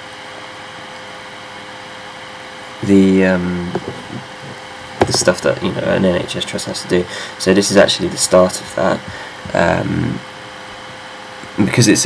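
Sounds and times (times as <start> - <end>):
background hum and hiss: 0.0 - 12.0
man speaking: 5.1 - 8.2.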